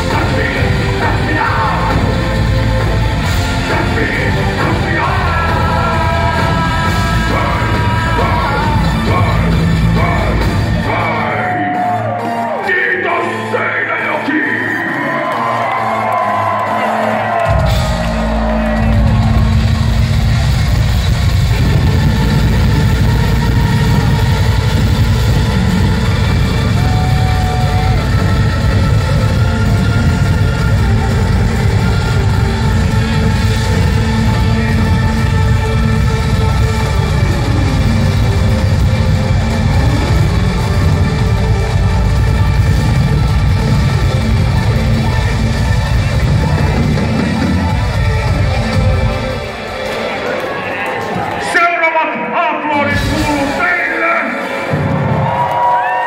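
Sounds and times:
industrial metal band playing live: 0.0s - 51.4s, 52.8s - 56.0s.

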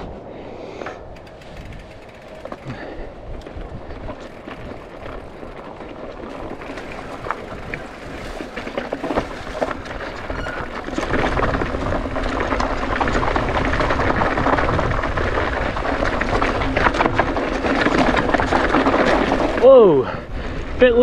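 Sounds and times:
wind rushing on microphone: 0.0s - 21.0s
bike knocking and rattling: 0.8s - 21.0s
tyres crunching on dirt: 1.2s - 20.0s
man exclaiming: 19.6s - 20.2s.

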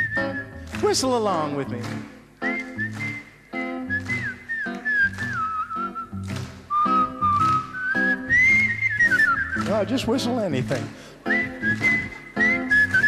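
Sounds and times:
whistled melody: 0.0s - 1.6s, 2.4s - 10.6s, 11.2s - 13.0s.

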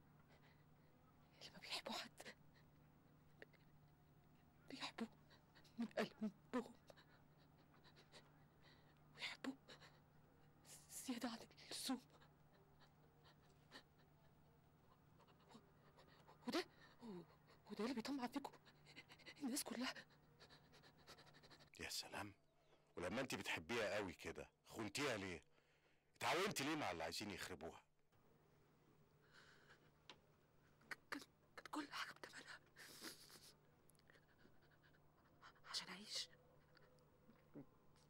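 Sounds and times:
faint low hum: 0.0s - 38.0s
woman breathing softly: 0.2s - 1.1s
woman speaking: 10.7s - 12.2s, 16.4s - 18.6s.

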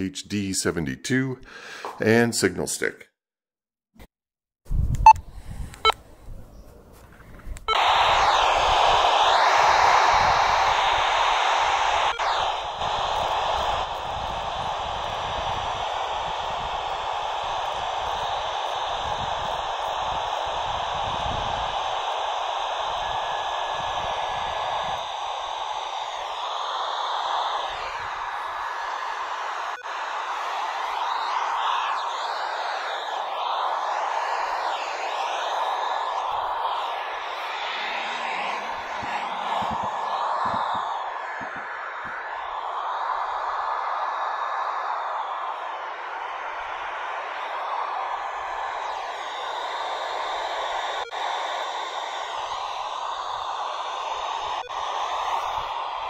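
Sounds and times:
faint wavering radio signal: 7.7s - 56.0s
radio static hiss: 7.7s - 56.0s.

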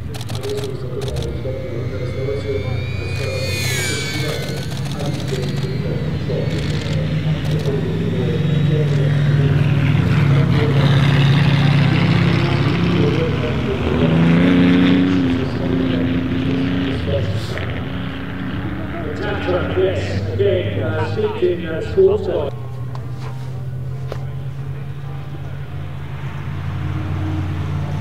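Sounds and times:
car engine revving: 0.0s - 21.6s
car engines running: 0.0s - 28.0s.

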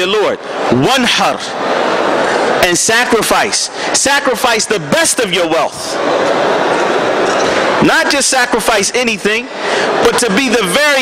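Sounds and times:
speech: 0.0s - 1.5s, 2.6s - 6.0s, 7.8s - 11.0s
distant voices in echoing hall: 0.0s - 11.0s.

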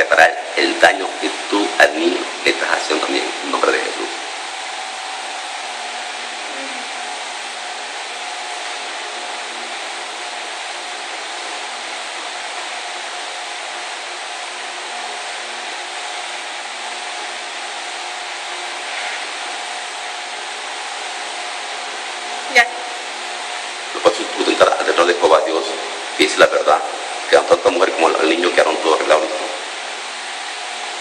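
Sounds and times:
faint constant hum: 0.0s - 31.0s.

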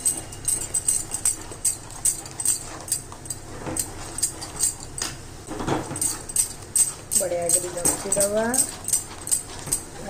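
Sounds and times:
spoon scraping batter in pan: 6.0s - 10.0s.

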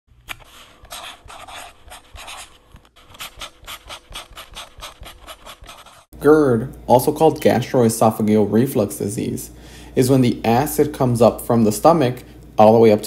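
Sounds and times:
pen scratching on surface: 0.4s - 6.1s.

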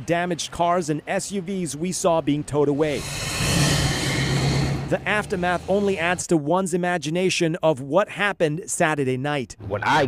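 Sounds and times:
highway traffic rushing: 0.0s - 6.3s.

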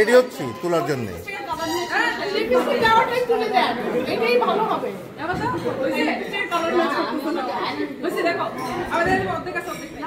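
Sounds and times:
women chattering: 0.3s - 10.0s.

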